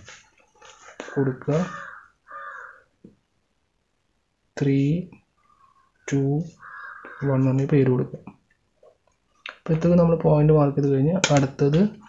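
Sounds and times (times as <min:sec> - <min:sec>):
harsh bird calls: 0:01.0 - 0:02.9, 0:05.4 - 0:07.5.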